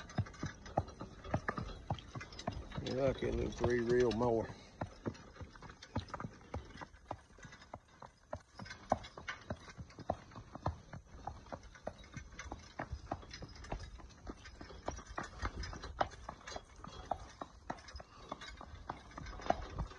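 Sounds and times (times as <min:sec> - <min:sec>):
horse hooves on concrete: 0:00.0 - 0:19.9.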